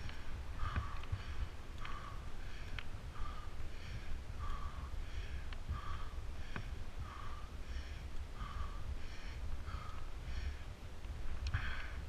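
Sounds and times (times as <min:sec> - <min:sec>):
cyclist breathing hard: 0:00.0 - 0:12.0
low wind rumble on microphone: 0:00.0 - 0:12.0.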